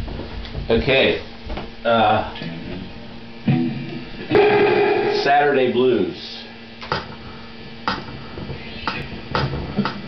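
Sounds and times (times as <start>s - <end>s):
guitar chords strummed: 3.4s - 6.1s.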